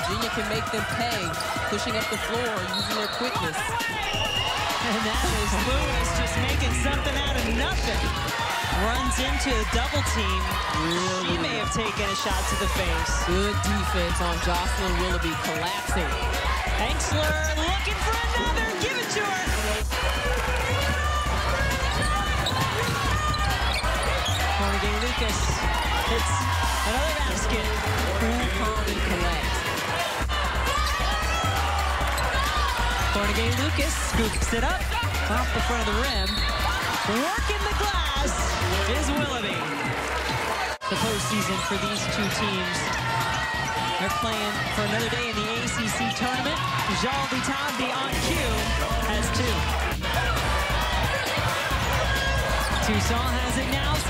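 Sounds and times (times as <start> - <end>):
background music: 0.0 - 54.0
broadcast voices: 0.0 - 54.0
crowd noise: 0.0 - 54.0
basketball bouncing on court: 16.9 - 29.7.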